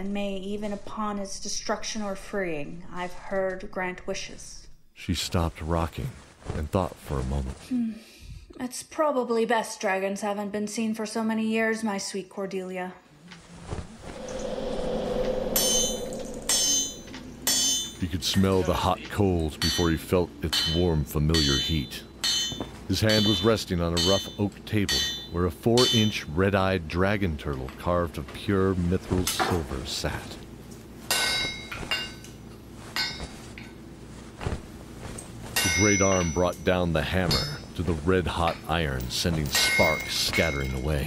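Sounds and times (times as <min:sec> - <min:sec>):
whoosh: 0:13.8 - 0:18.0
hammer striking anvil: 0:16.5 - 0:18.0, 0:20.5 - 0:26.2, 0:35.6 - 0:36.5, 0:39.4 - 0:40.8.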